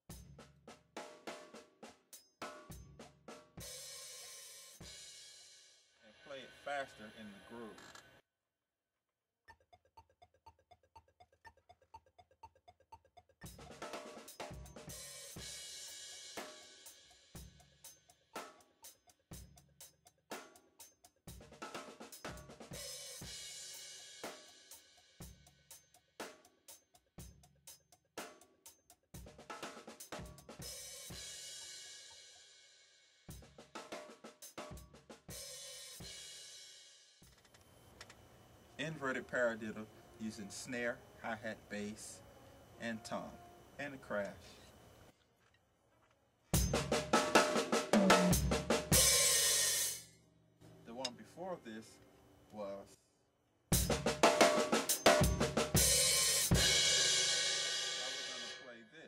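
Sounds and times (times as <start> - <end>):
drum kit groove: 0.0 - 5.6, 13.4 - 32.2, 33.3 - 37.4, 46.6 - 50.1, 53.7 - 58.6.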